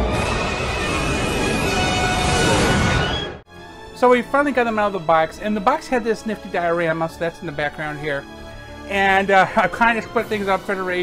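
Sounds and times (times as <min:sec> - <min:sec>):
rushing whoosh with deep rumble: 0:00.0 - 0:03.4
film music: 0:00.0 - 0:11.0.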